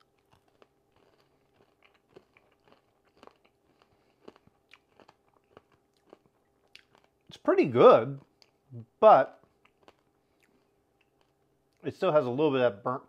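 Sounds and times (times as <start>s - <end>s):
popcorn crunching: 0.0s - 11.9s.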